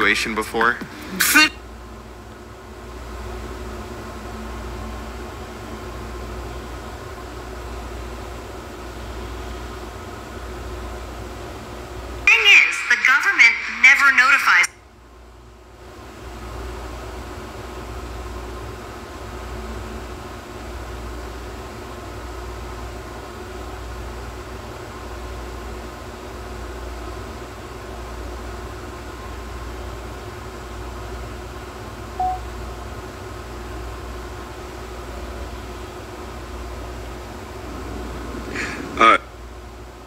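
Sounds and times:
machine humming with low drone: 0:00.0 - 0:12.6, 0:14.8 - 0:40.0.

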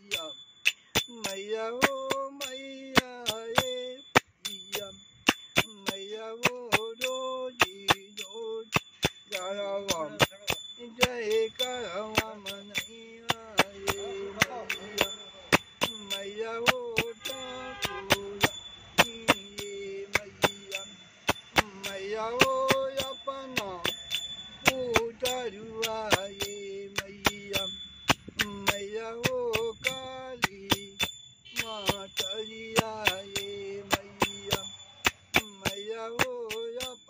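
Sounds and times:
man singing devotional song: 0:00.0 - 0:00.4, 0:01.0 - 0:37.0
hand cymbals struck: 0:00.0 - 0:37.0.

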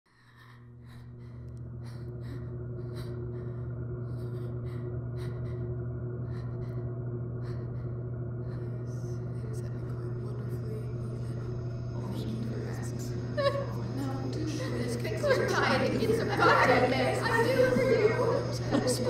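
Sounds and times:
deep steady drone: 0:00.1 - 0:19.0.

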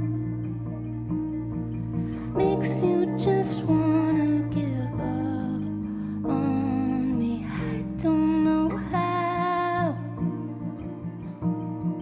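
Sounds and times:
woman singing: 0:02.4 - 0:10.5.

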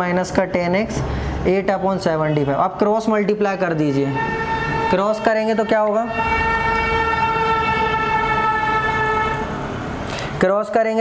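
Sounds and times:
low traffic rumble: 0:00.0 - 0:10.9
vehicle horn long blast: 0:04.1 - 0:09.6.

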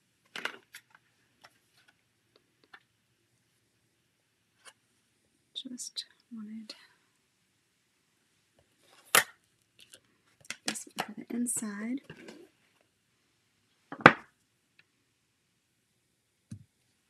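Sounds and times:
plastic clicks and clatter: 0:00.2 - 0:02.9.

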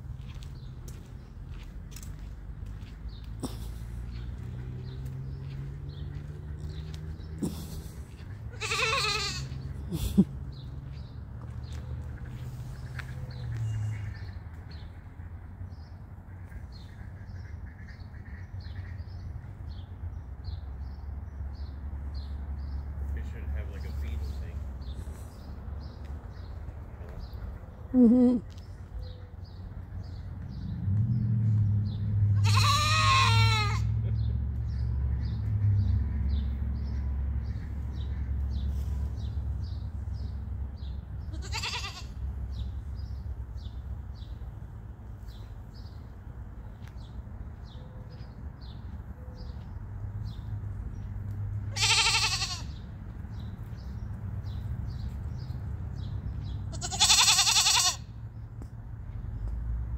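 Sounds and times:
wavering bleat-like animal call: 0:08.5 - 0:09.6, 0:32.3 - 0:34.0, 0:41.3 - 0:42.2, 0:51.7 - 0:52.8, 0:56.7 - 0:58.1.

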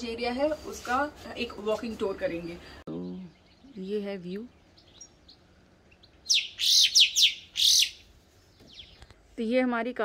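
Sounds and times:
songbird singing: 0:01.8 - 0:09.2.

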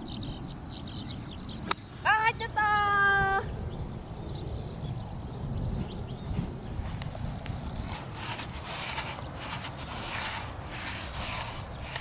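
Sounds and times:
quiet outdoor background noise: 0:00.0 - 0:12.0.

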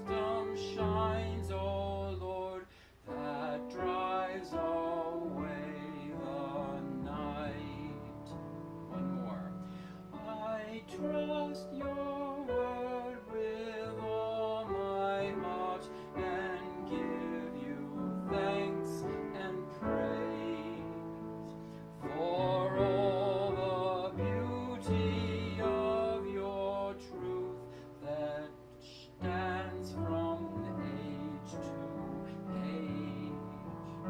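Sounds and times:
hymn on digital keyboard: 0:00.0 - 0:34.0
person singing: 0:00.0 - 0:34.0.

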